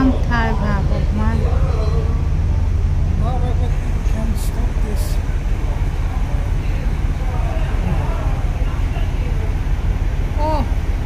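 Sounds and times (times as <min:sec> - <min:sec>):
faint voices: 0:00.0 - 0:11.0
ship engine rumble: 0:00.0 - 0:11.0.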